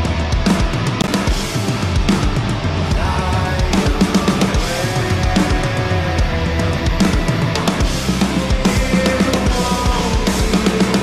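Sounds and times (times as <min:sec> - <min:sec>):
drum kit with cymbal hits: 0:00.0 - 0:11.0
progressive metal song: 0:00.0 - 0:11.0.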